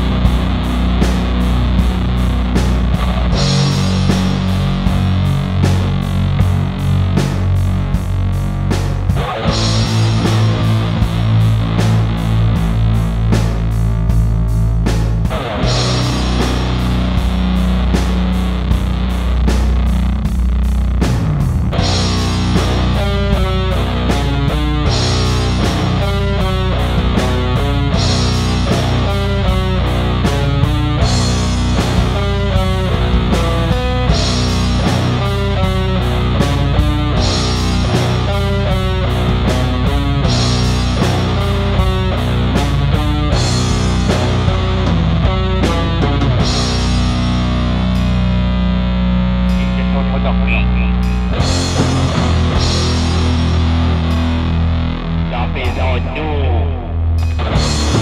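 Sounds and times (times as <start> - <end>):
drums and cymbal hits: 0.0 - 56.1, 57.1 - 58.0
bass: 0.0 - 58.0
distorted electric guitars: 0.0 - 58.0.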